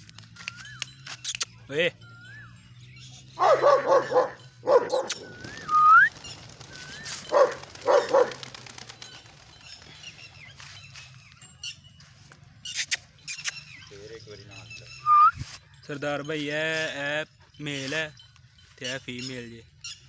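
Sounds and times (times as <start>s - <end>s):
dog barking: 3.4s - 5.2s, 7.2s - 8.4s.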